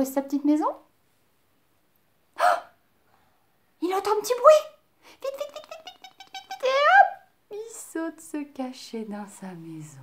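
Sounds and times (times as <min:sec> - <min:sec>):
woman exclaiming oh: 0:06.4 - 0:07.2.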